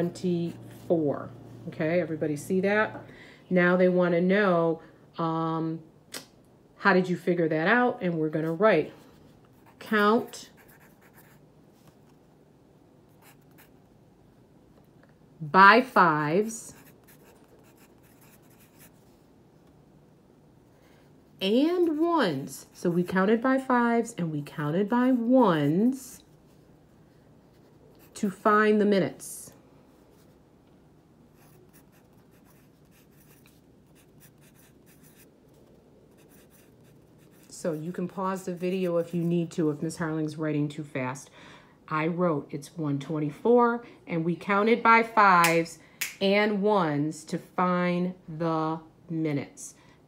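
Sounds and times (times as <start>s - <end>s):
pencil writing on paper: 10.6s - 11.4s, 16.8s - 18.9s, 31.4s - 35.3s, 36.1s - 37.9s.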